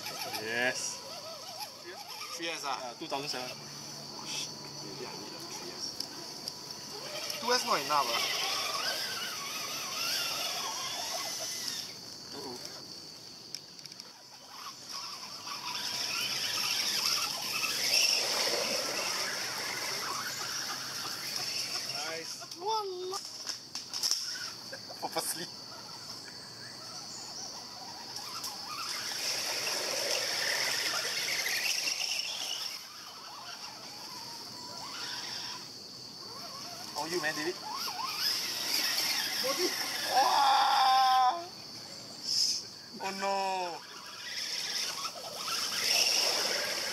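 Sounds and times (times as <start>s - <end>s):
high-pitched insect drone: 0.0s - 46.9s
small electric motors whining: 0.0s - 46.9s.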